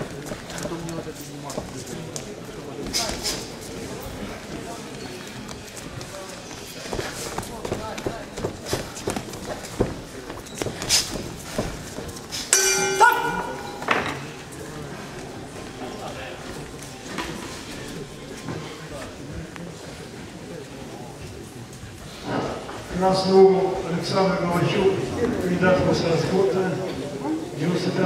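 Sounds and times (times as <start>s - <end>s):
boxing ring bell: 12.5s - 13.9s.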